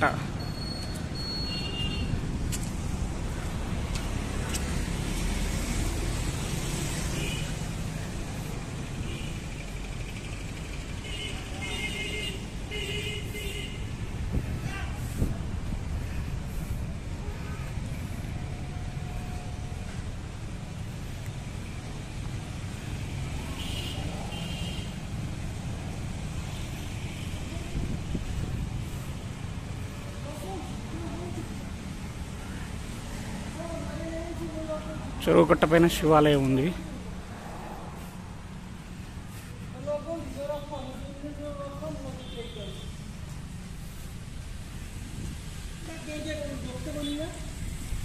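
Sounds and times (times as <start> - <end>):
road traffic rumble: 0.0 - 48.0.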